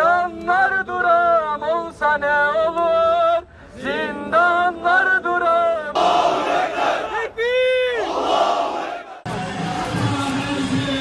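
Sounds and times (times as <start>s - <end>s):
crowd chanting and shouting: 3.7s - 11.0s.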